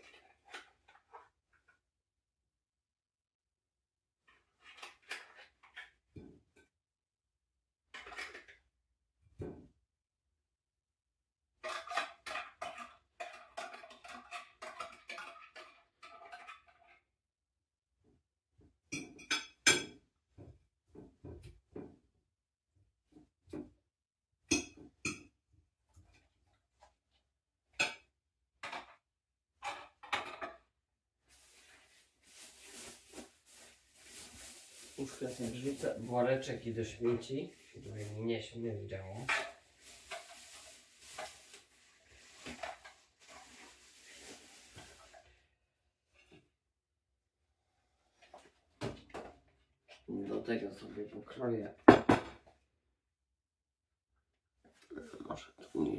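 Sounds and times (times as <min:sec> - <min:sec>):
dishes knocking and clattering: 0:11.6 - 0:16.9, 0:18.9 - 0:22.0, 0:24.5 - 0:25.4, 0:27.7 - 0:29.0, 0:29.6 - 0:30.7, 0:51.8 - 0:52.6
dishes and cutlery clinking: 0:18.9 - 0:20.0
soft steady rustle: 0:31.3 - 0:36.5.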